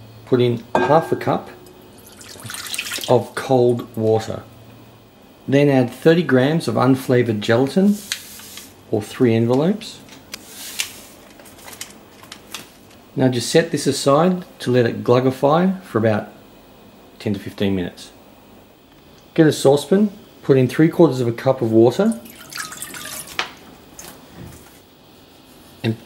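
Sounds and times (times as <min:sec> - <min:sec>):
water pouring into a saucepan: 0:01.7 - 0:03.2, 0:22.1 - 0:23.5.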